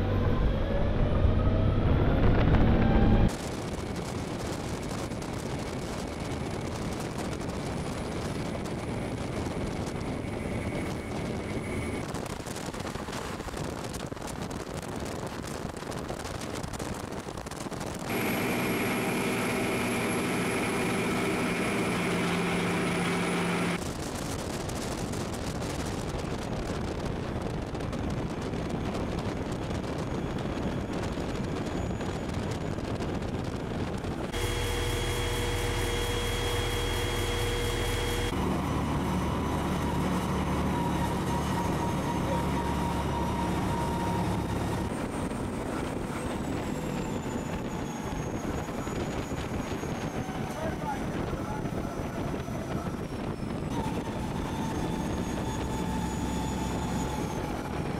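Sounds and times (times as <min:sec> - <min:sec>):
tyre and wind noise: 0:00.0 - 0:20.6, 0:23.6 - 0:34.5, 0:37.3 - 0:57.9
vehicle engine drone: 0:00.0 - 0:57.9.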